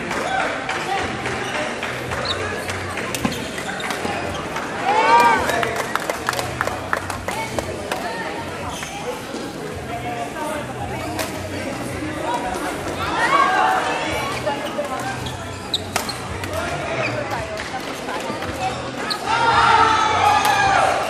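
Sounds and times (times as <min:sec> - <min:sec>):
voices in a hall: 0:00.0 - 0:21.0.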